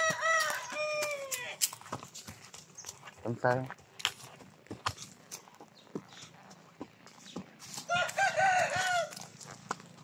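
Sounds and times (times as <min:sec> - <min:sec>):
rooster crowing: 0:00.0 - 0:01.6, 0:07.9 - 0:09.3.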